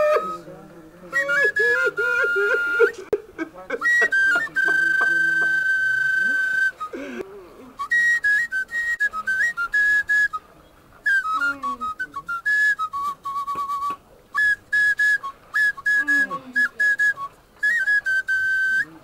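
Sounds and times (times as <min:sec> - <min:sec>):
flute-like melody: 0:00.0 - 0:19.0.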